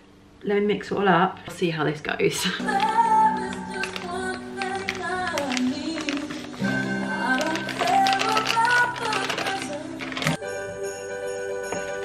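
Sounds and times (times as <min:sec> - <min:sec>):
song with singing over chords: 0:02.6 - 0:12.0.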